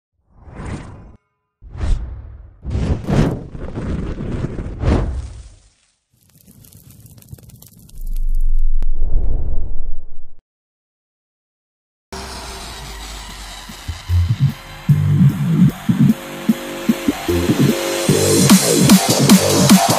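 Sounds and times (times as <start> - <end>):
fine crackle: 3.5 - 8.8
loud low rumble: 8.0 - 10.4.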